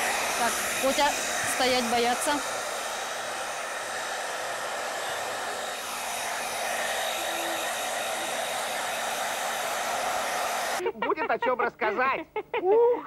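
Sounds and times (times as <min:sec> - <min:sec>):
blow dryer running: 0:00.0 - 0:10.8.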